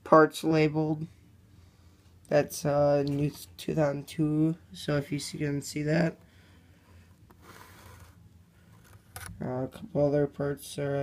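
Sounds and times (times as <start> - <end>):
cardboard box rubbing: 7.4 - 9.0.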